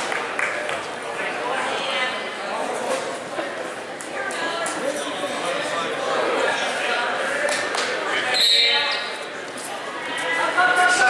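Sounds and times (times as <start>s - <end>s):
spectators' voices echoing: 0.0s - 11.0s.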